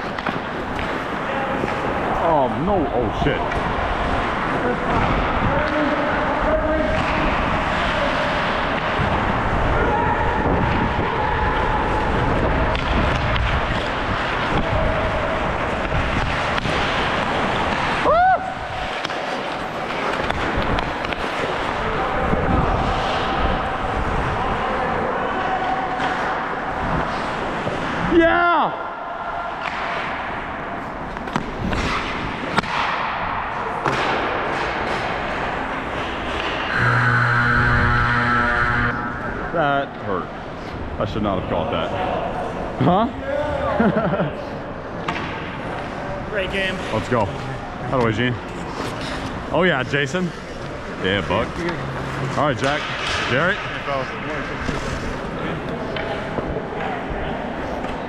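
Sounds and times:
rink noise: 36.0 - 39.6
arena horn long note: 36.7 - 39.5.

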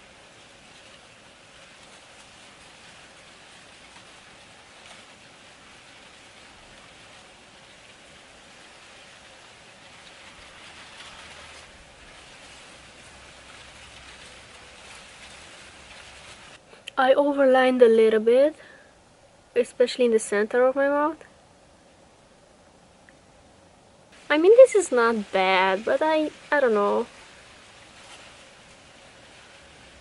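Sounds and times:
faint steady hiss: 0.0 - 30.0.

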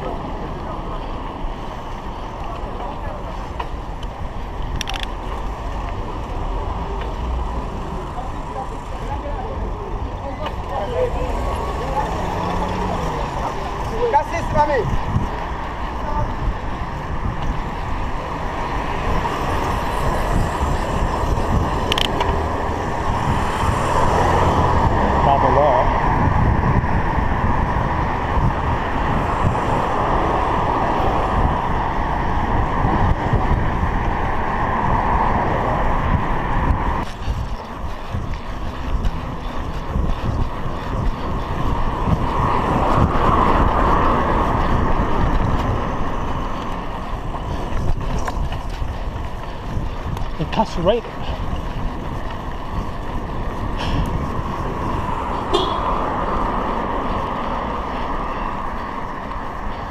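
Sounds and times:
passing motor traffic: 0.0 - 59.9
wind on microphone: 0.0 - 59.9.

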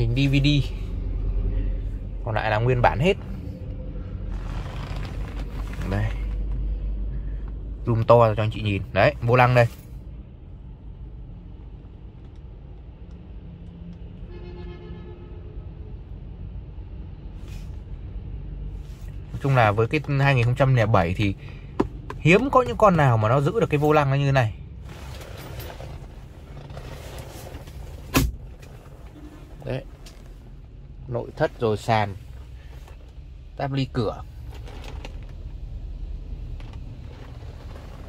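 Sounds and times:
low background rumble and hum: 0.0 - 38.0.

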